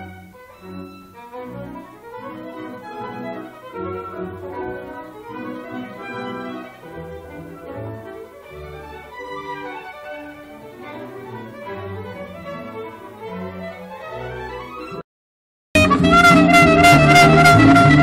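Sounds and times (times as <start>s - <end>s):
orchestra playing classical music: 0.0s - 15.0s, 15.8s - 18.0s.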